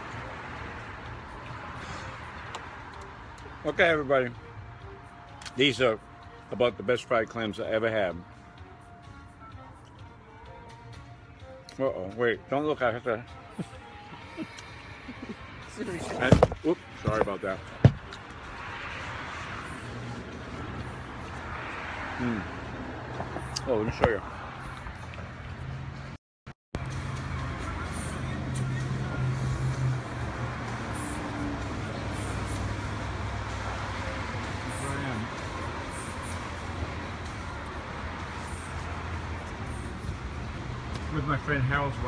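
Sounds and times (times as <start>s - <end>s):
road traffic noise: 0.0s - 42.0s.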